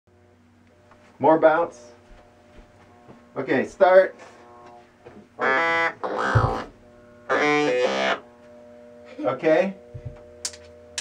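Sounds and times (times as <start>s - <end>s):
talkbox synthesizer notes: 3.0s - 8.4s.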